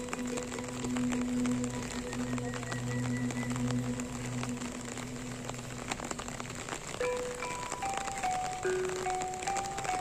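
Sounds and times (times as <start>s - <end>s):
steady rain falling: 0.0s - 10.0s
gamelan music: 7.0s - 10.0s.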